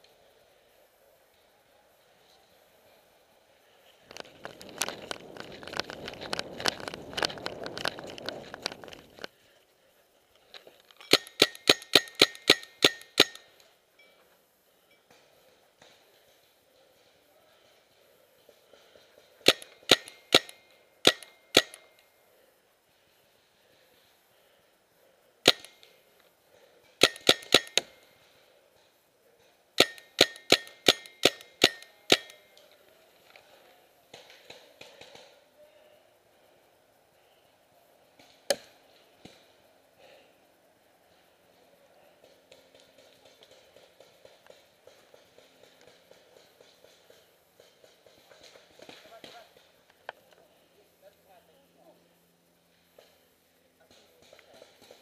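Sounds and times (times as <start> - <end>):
paintball marker firing pops: 19.5 - 21.8, 25.5 - 25.8.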